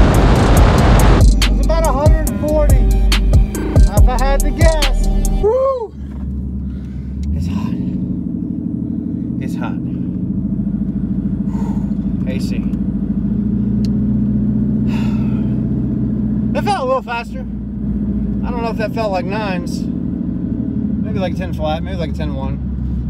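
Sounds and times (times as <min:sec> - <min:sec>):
car engine heard from cabin: 0:00.0 - 0:23.0.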